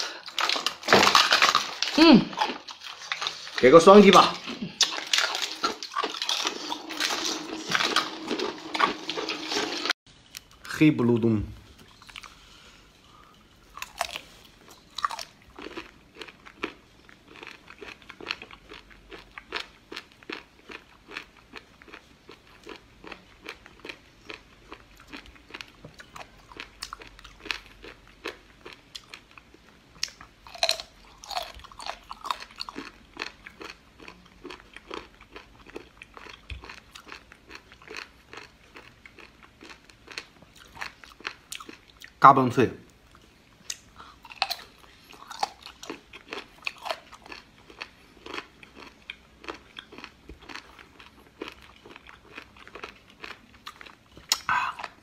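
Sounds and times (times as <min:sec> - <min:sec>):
chewing crunchy food: 0:00.0 - 0:10.7, 0:11.7 - 0:42.2, 0:42.9 - 0:55.0.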